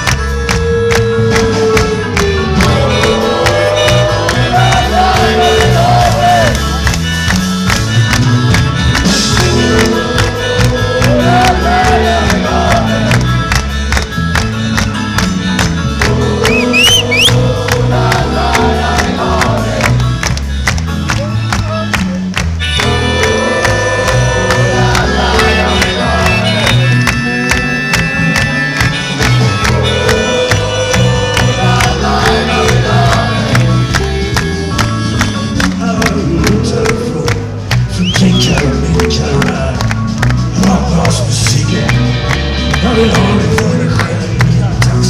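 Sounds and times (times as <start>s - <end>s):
live rock band: 0.0s - 45.0s
man singing: 0.4s - 6.8s, 9.1s - 13.2s, 22.7s - 27.0s, 29.4s - 34.8s, 35.5s - 45.0s
short rising whistle: 16.5s - 17.4s.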